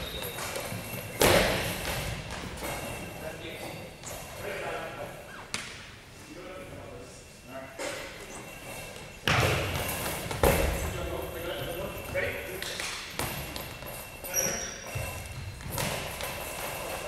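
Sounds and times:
ball thudding on gym floor: 9.2 - 10.8.

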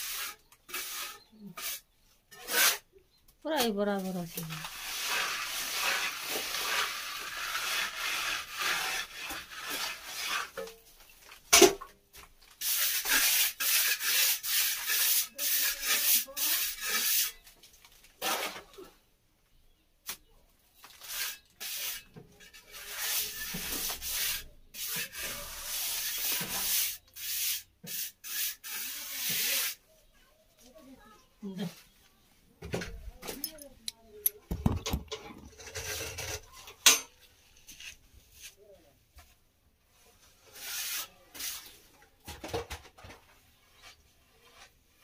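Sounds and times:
trowel scraping plaster: 0.0 - 2.9, 4.4 - 11.4, 12.5 - 17.5, 18.2 - 18.8, 20.8 - 29.8, 34.5 - 38.7, 40.1 - 45.0.

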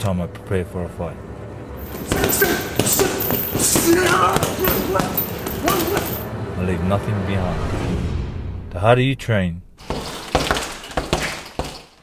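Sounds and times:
punches hitting a bag: 1.8 - 6.2, 9.8 - 12.0.

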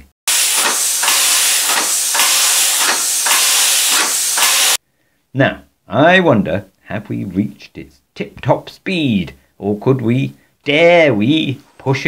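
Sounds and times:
air engine hissing in pulses: 0.3 - 4.8.

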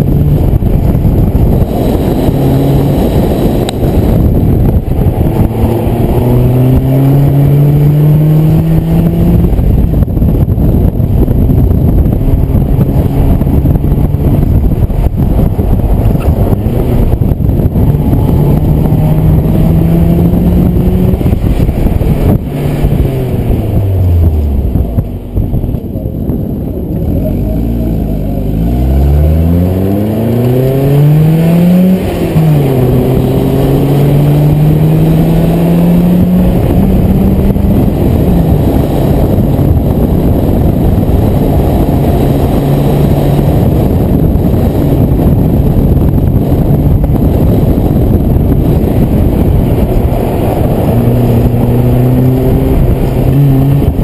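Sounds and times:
car engine accelerating: 0.0 - 54.0.

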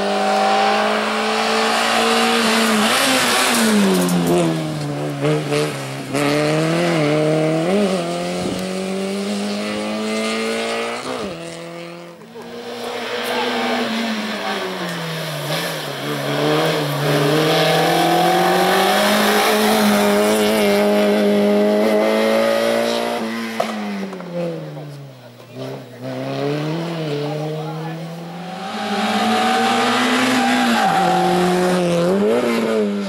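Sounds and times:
car engine revving: 0.0 - 33.0.

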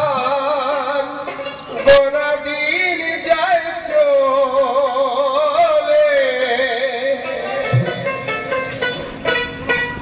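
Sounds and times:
plucked string instrument melody: 4.7 - 10.0.

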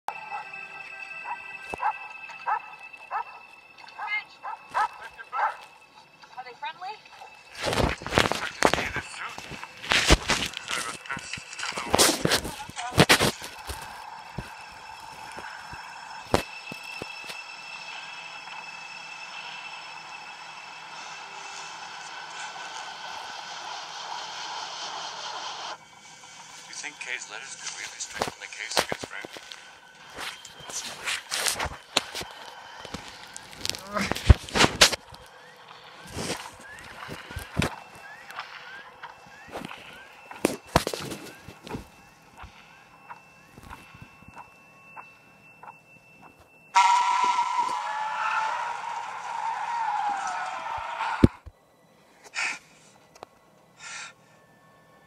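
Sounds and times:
film music: 0.1 - 55.0.

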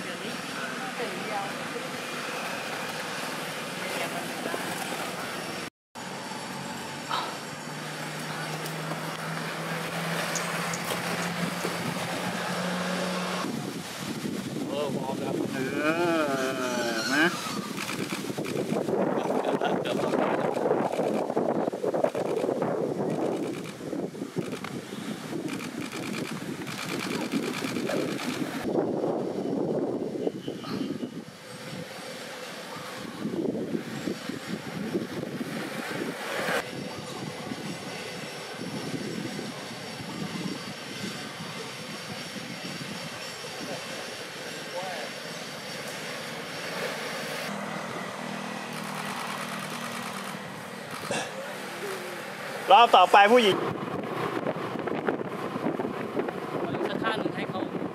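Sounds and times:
indistinct voices: 15.2 - 17.8.

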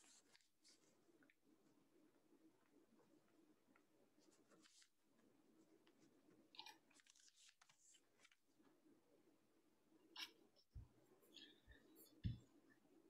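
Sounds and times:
faint clicks and rustles: 0.0 - 8.9.

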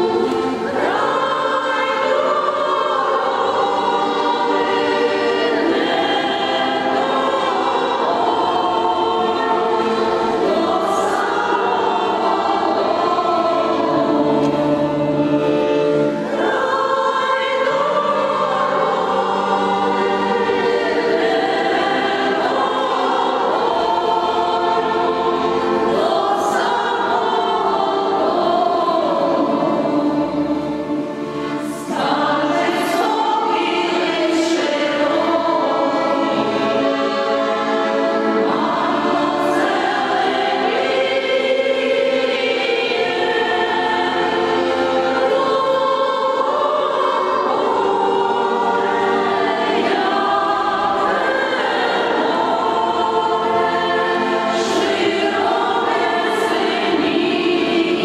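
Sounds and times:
women's choir singing in harmony: 0.0 - 58.0.

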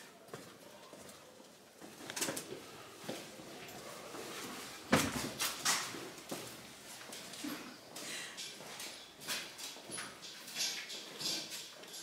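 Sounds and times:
footsteps on hard floor: 1.8 - 8.0.

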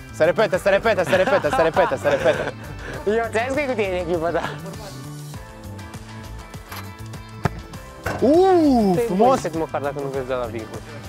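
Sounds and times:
background music: 0.0 - 11.0
boot striking football: 6.7 - 8.4.

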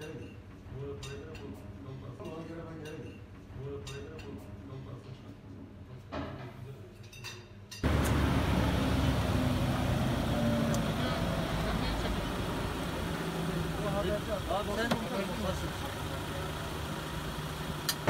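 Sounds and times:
vehicle engines and traffic: 7.8 - 18.0
people talking: 7.9 - 16.9
quiet voices: 7.9 - 17.0.

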